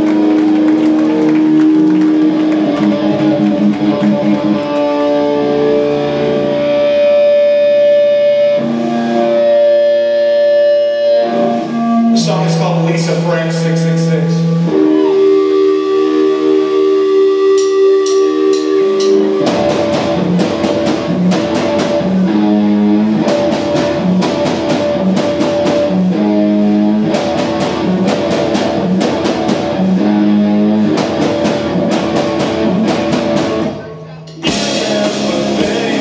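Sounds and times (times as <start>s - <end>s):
drum kit: 0.0s - 5.8s, 17.2s - 36.0s
electric guitar: 0.0s - 36.0s
cymbal strikes: 17.6s - 22.1s.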